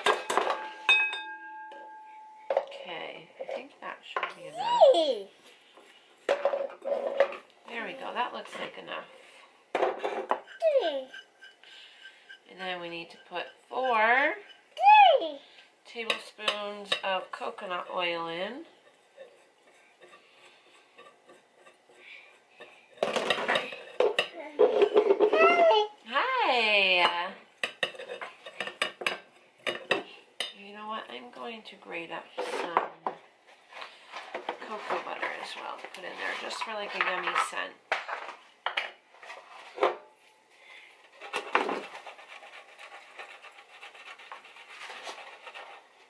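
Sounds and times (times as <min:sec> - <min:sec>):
toddler's voice: 0:04.4 - 0:05.4, 0:10.6 - 0:11.1, 0:14.8 - 0:15.5, 0:24.3 - 0:26.0
block scraping on grater: 0:10.3 - 0:13.6, 0:41.1 - 0:46.0.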